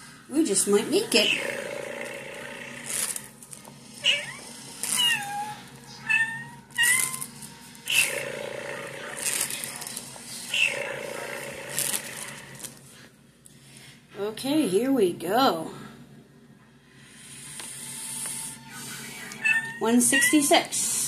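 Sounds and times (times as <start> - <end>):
cat meowing: 4.0 - 7.3, 19.4 - 20.5.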